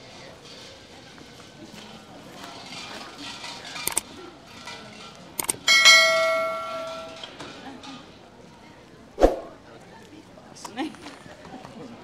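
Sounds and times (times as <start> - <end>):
bright bell ding: 5.7 - 7.3.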